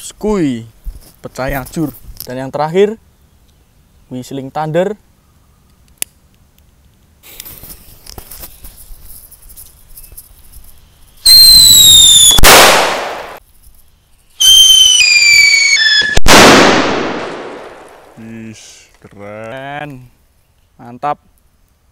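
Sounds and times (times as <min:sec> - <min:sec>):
shrill firework whistles: 0:11.2 - 0:13.4, 0:14.4 - 0:16.4
firecracker bang: 0:11.3 - 0:13.4, 0:15.7 - 0:18.1.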